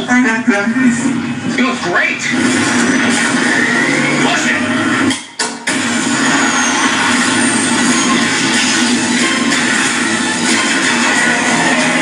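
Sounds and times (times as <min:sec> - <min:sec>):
movie soundtrack music: 0:00.9 - 0:12.0.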